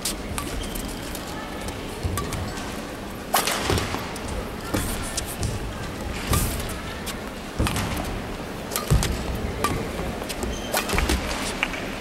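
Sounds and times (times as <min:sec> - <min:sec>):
racket hitting shuttlecock: 0:02.0 - 0:02.7, 0:03.3 - 0:11.8.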